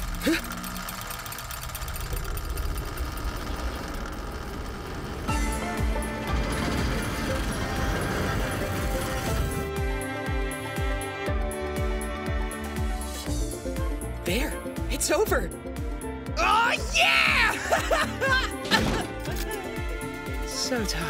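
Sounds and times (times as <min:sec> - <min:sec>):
whirring ticking clockwork gears: 0:00.0 - 0:09.7
soundtrack music: 0:05.2 - 0:21.0.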